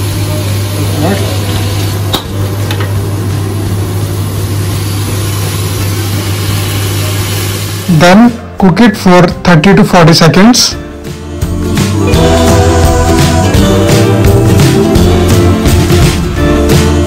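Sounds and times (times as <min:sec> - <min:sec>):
vegetables sizzling in a wok: 0:00.0 - 0:08.0.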